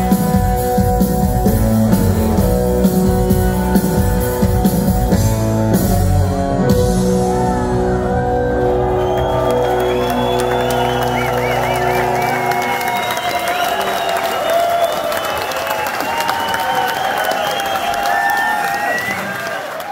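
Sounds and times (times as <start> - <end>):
crowd cheering and applauding: 0.0 - 19.9.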